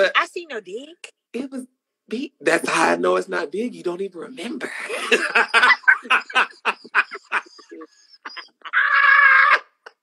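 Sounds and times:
woman laughing: 0:04.6 - 0:09.3.

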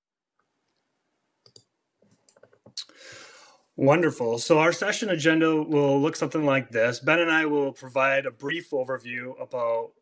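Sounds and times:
faint hiss: 0:02.7 - 0:06.6.

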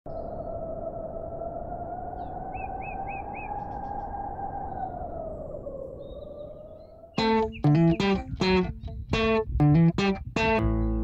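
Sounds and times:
small birds chirping: 0:06.0 - 0:11.0.

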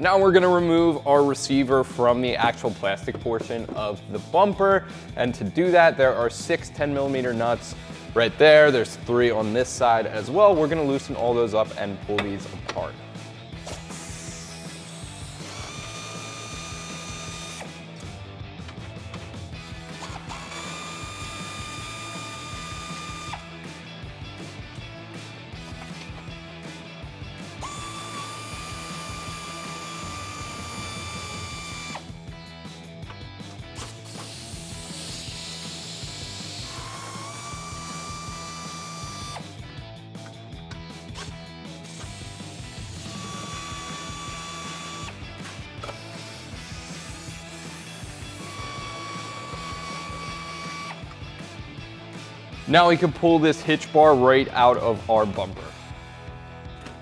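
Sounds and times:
pneumatic air ratchet whining: 0:13.6 - 0:17.8, 0:19.9 - 0:23.5, 0:27.6 - 0:32.2, 0:33.7 - 0:39.6, 0:41.1 - 0:51.1.

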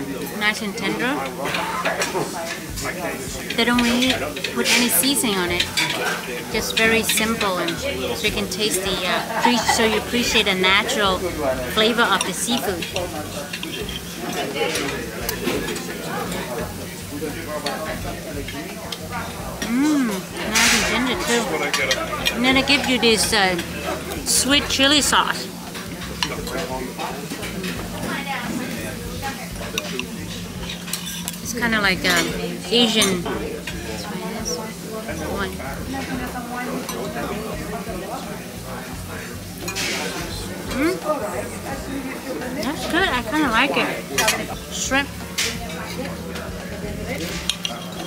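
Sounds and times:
dining-room hum: 0:00.0 - 0:48.0
cutlery scraping on plate: 0:12.1 - 0:16.5, 0:19.6 - 0:23.0, 0:29.7 - 0:31.5, 0:39.6 - 0:40.9, 0:47.2 - 0:48.0.

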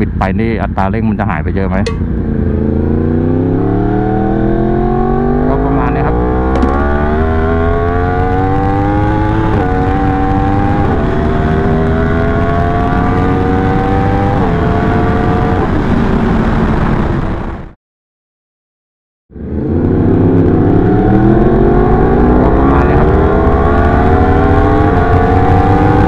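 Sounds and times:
motorcycle engine accelerating: 0:01.6 - 0:17.7, 0:19.3 - 0:26.0
wind rush on microphone: 0:06.6 - 0:17.7, 0:19.4 - 0:26.0.

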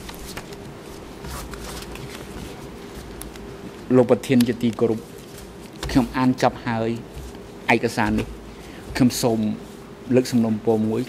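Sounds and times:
low buzzing hum: 0:00.0 - 0:11.0
man speaking: 0:03.9 - 0:05.1, 0:05.8 - 0:07.1, 0:07.7 - 0:08.3, 0:08.9 - 0:11.0.

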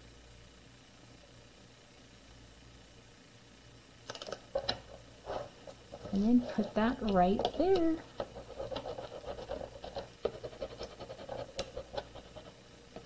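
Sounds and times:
tape rustling and hand taps: 0:05.4 - 0:09.2.

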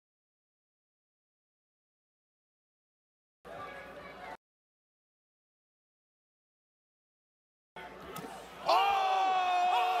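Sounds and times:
faint crowd noise: 0:03.5 - 0:04.4, 0:07.8 - 0:10.0
person shouting high: 0:08.7 - 0:10.0.

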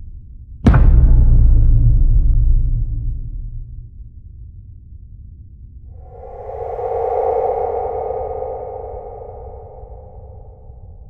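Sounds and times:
low rumble: 0:06.0 - 0:11.0.

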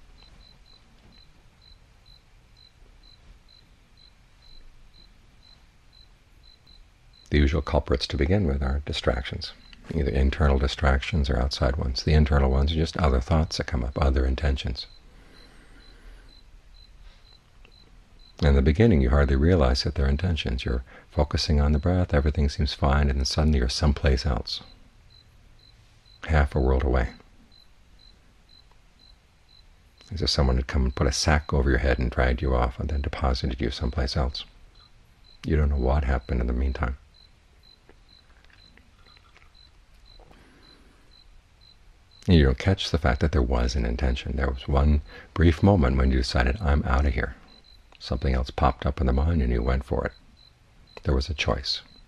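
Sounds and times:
low room hum: 0:00.0 - 0:52.0
man speaking: 0:07.3 - 0:14.9, 0:18.4 - 0:24.7, 0:26.2 - 0:27.2, 0:30.0 - 0:34.5, 0:35.4 - 0:37.0, 0:42.2 - 0:50.2, 0:51.0 - 0:52.0
faint high-pitched pips: 0:37.8 - 0:41.3.

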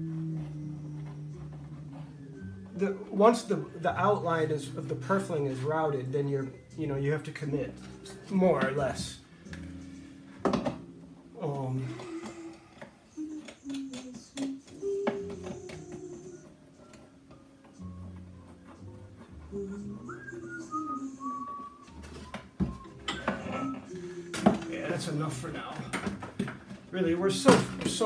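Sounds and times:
slow tune with held notes: 0:00.0 - 0:25.7.

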